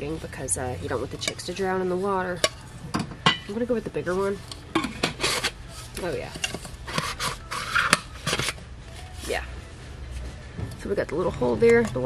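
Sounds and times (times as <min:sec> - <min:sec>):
plastic base scraping plastic jar: 0:04.8 - 0:09.4.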